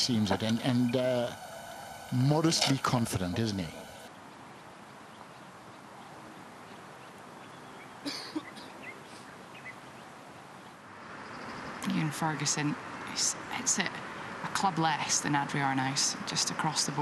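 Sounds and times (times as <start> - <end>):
bird call: 0.0 - 4.1
faint steady hiss: 0.0 - 17.0.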